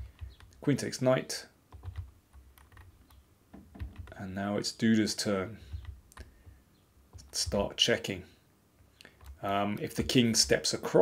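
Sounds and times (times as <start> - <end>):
sharp computer clicks: 0.0 - 0.6, 5.6 - 7.7.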